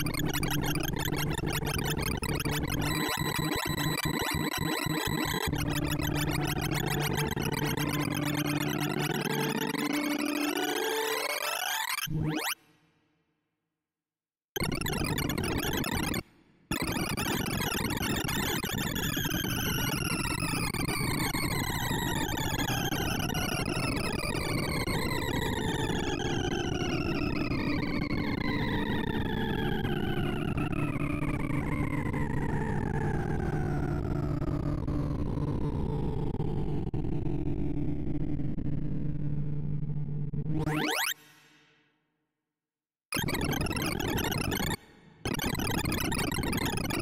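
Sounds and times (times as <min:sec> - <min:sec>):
rapid synthesized beeps: 0:00.1 - 0:10.5, 0:40.7 - 0:41.2.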